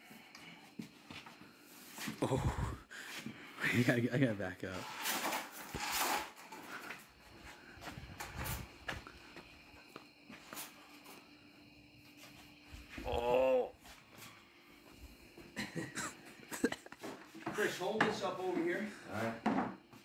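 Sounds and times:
man groaning: 2.2s - 2.9s, 13.0s - 13.8s.

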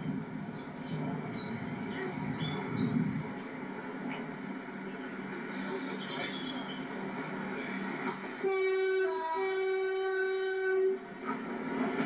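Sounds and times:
passing train running: 0.0s - 12.0s
train horn: 8.0s - 11.5s.

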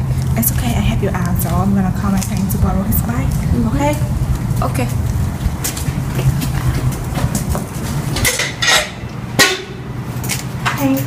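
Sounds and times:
steady low rumble: 0.0s - 10.7s.

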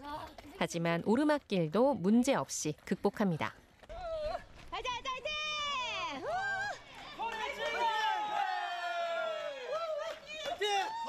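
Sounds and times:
people shouting and cheering: 3.9s - 11.0s.

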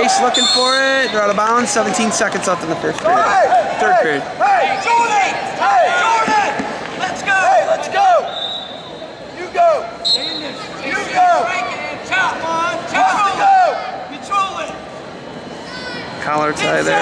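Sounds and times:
crowd shouting: 0.0s - 17.0s.

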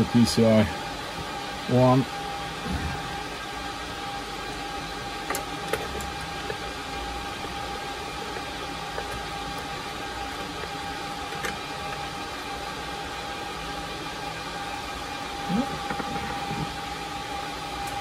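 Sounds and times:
steady hiss and high hum: 0.0s - 18.0s.

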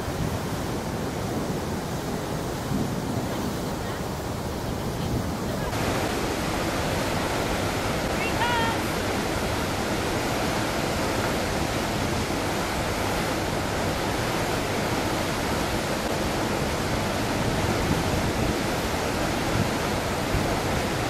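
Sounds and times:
waterfall and rapids rushing: 0.0s - 21.0s.

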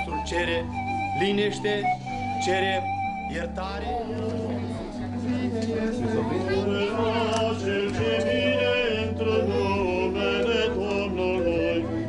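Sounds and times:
voices chanting slow melody: 0.0s - 12.0s.

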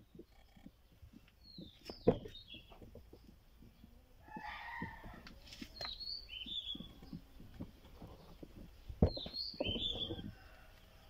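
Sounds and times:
high bird chirps: 5.7s - 7.2s, 9.0s - 10.4s
rooster crowing: 10.1s - 11.0s.

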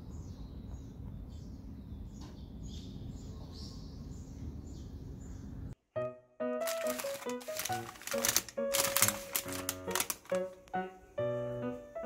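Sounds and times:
small birds chirping: 0.0s - 5.8s.

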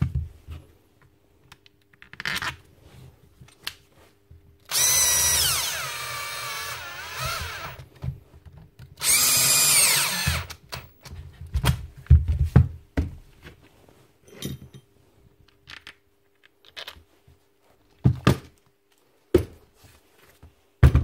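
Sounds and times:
cordless drill driving screws: 4.7s - 7.8s, 9.0s - 11.0s.

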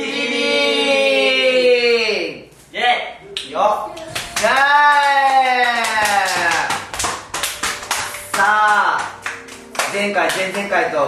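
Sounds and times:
people clapping: 3.4s - 10.8s.

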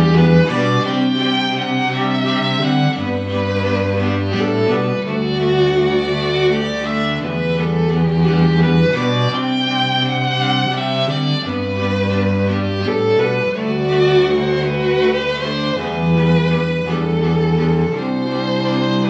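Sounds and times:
string quartet playing held chords: 0.0s - 19.0s.

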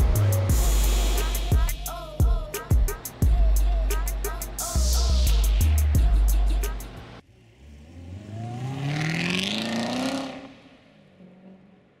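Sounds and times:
hip-hop music: 0.0s - 7.2s
car engine revving: 0.0s - 11.9s.

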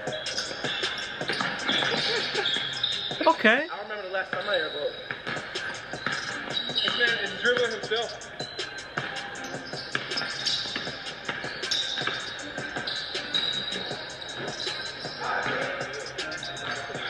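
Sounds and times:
background music with steady beat: 0.0s - 17.0s
basketball bouncing on wooden floor: 1.2s - 3.2s, 5.1s - 13.6s.

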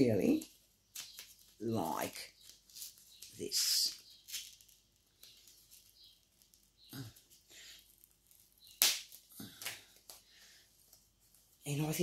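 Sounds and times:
envelope rustling: 0.4s - 10.1s
paper crackle: 0.4s - 10.2s.

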